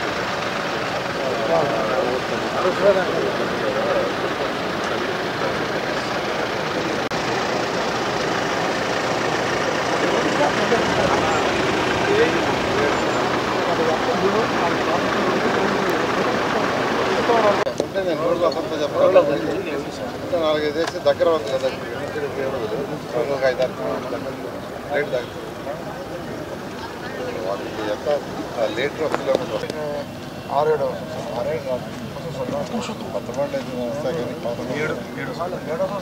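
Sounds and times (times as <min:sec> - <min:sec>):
people talking: 0:00.0 - 0:36.0
tractor engines running: 0:00.0 - 0:36.0.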